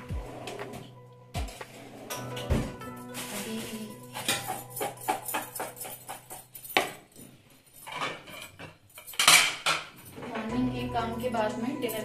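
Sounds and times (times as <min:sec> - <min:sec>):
crockery and steel bowls rattling: 0:01.5 - 0:12.0.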